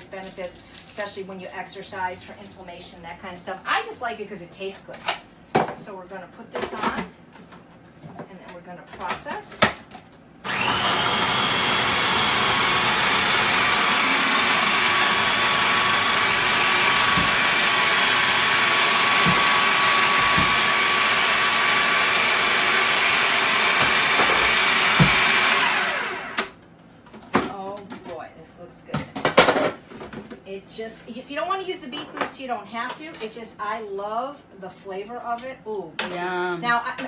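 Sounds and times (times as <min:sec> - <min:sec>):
food processor motor whining: 0:10.4 - 0:26.6.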